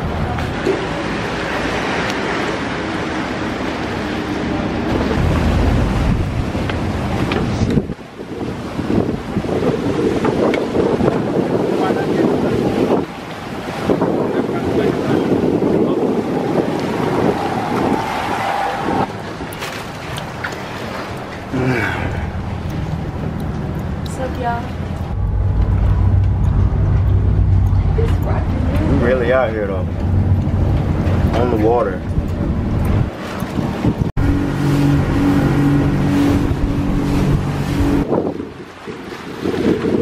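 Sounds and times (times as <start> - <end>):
speedboat engines rumbling: 0.0 - 40.0
water sloshing against hulls: 0.0 - 40.0
wind buffeting microphone: 0.0 - 40.0.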